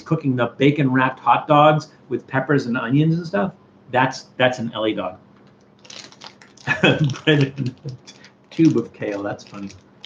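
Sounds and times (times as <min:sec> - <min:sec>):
man laughing: 0:06.7 - 0:07.9.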